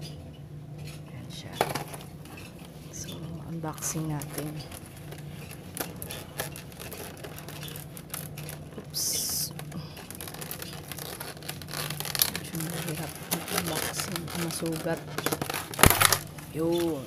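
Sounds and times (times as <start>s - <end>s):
plastic packaging crackling: 1.4s - 17.0s.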